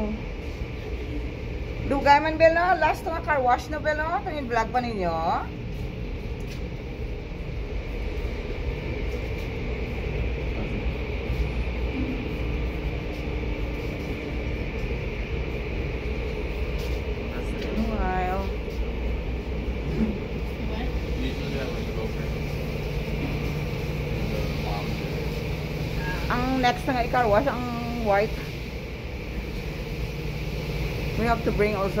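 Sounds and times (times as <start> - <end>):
low hum: 0.0 - 32.0.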